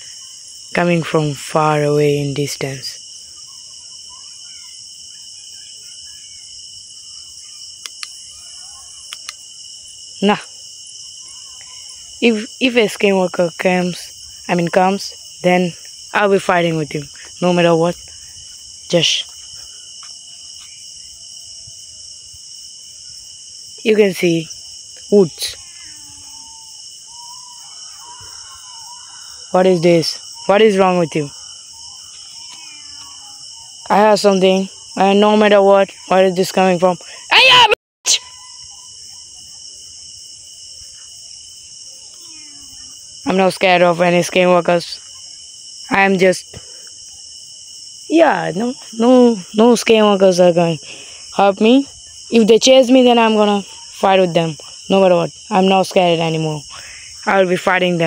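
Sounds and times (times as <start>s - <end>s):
crickets chirping: 0.0s - 58.0s
distant wavering cat call: 3.2s - 9.6s, 11.0s - 12.2s, 24.5s - 36.4s, 37.1s - 39.7s, 41.9s - 43.2s
small sharp clicks: 7.8s - 8.2s, 9.1s - 9.4s.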